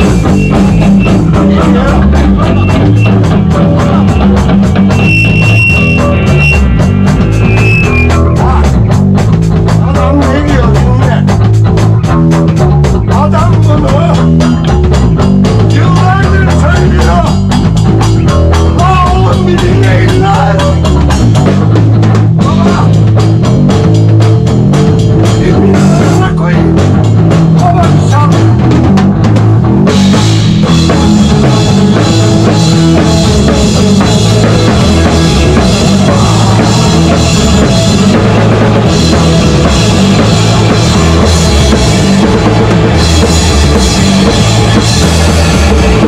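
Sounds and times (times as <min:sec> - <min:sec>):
drum kit with cymbals: 0:00.0 - 0:46.0
electric bass: 0:00.0 - 0:46.0
electric guitars: 0:00.0 - 0:46.0
punk band playing live: 0:00.0 - 0:46.0.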